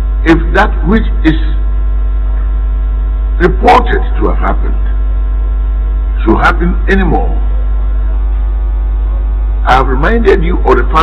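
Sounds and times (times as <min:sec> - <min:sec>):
electrical mains hum: 0:00.0 - 0:11.0
recorded man's voice: 0:00.2 - 0:01.6, 0:03.4 - 0:05.0, 0:06.2 - 0:07.5, 0:09.6 - 0:11.0.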